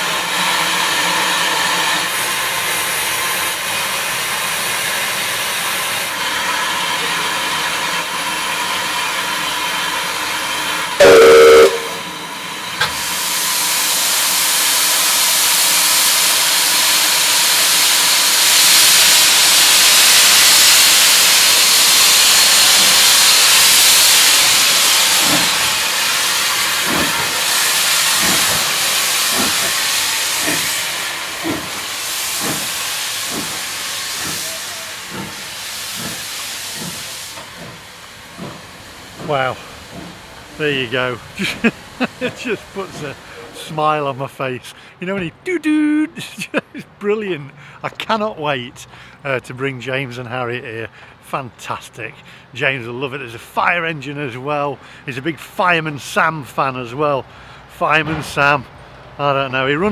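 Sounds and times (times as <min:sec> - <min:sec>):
steam hissing: 0:00.0 - 0:47.9
steam locomotive exhaust chuffs: 0:00.0 - 0:50.0, 0:50.9 - 0:59.9
steam whistle blast: 0:11.0 - 0:12.1.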